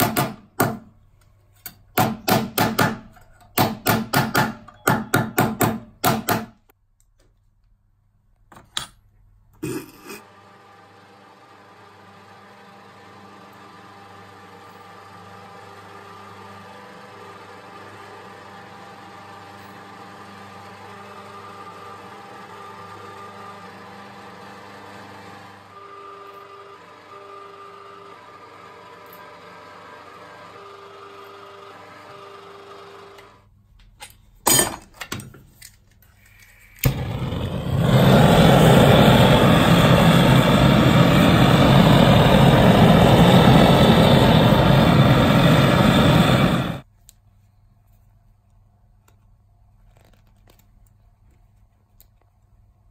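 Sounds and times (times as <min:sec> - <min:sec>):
rolling mill humming: 0:36.8 - 0:46.8
loud rushing roar: 0:36.9 - 0:46.8.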